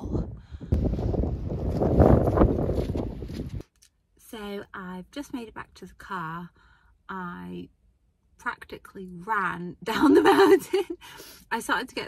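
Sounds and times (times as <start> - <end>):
strong wind on microphone: 0.0 - 3.6.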